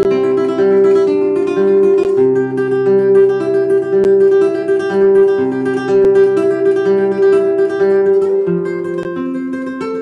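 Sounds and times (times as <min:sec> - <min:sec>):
fingerstyle classical guitar: 0:00.0 - 0:10.0.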